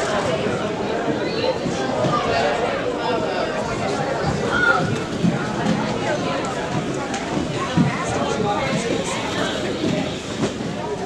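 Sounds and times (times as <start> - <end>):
echoing chatter of many voices: 0.0 - 11.0
roller-skate wheels rolling on wood: 3.7 - 11.0.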